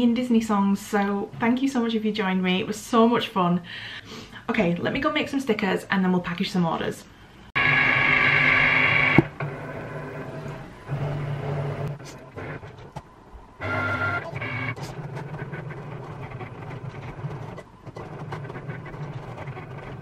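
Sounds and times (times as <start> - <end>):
cutting machine motors whirring: 7.6 - 13.0, 13.6 - 20.0.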